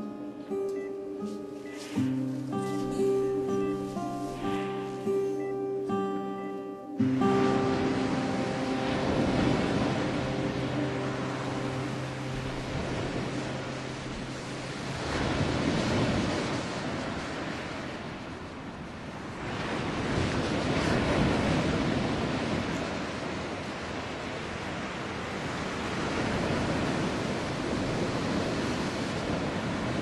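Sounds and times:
surf breaking on rocks: 0:07.0 - 0:30.0.

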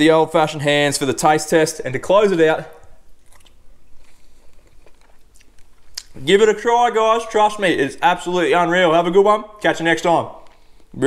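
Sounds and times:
man chewing food: 0:02.7 - 0:06.2.

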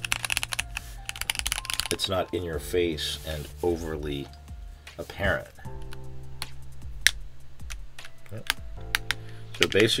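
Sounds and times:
mechanical keyboard typing: 0:00.0 - 0:02.2.

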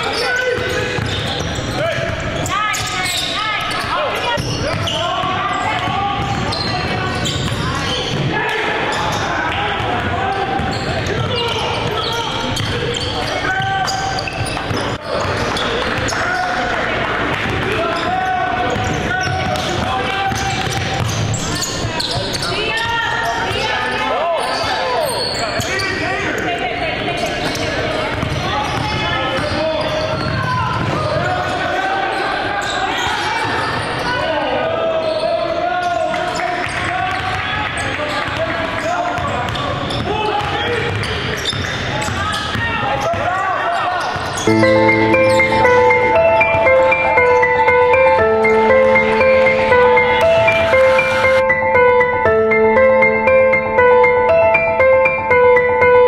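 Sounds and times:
sneakers squeaking: 0:00.0 - 0:16.6, 0:17.4 - 0:26.0, 0:27.2 - 0:31.3, 0:35.0 - 0:35.3, 0:39.2 - 0:55.3.

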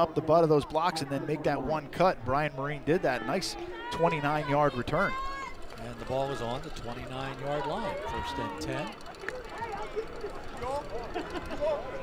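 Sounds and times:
commentators laughing: 0:07.2 - 0:12.0.

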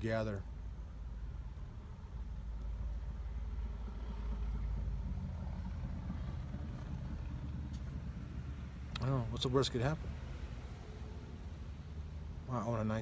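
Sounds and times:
vehicle engine rumbling: 0:00.0 - 0:13.0.

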